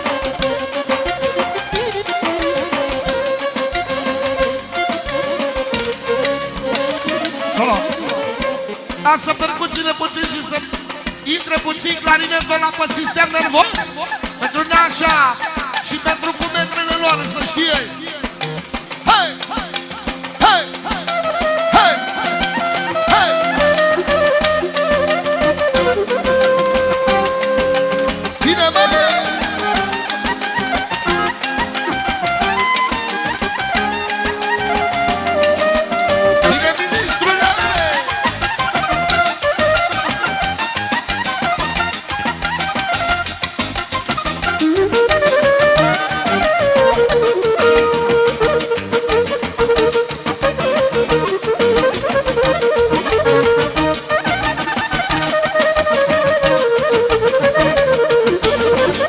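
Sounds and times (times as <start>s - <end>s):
clarinet melody: 0.0s - 9.1s, 18.0s - 59.0s
live band dance music: 0.0s - 59.0s.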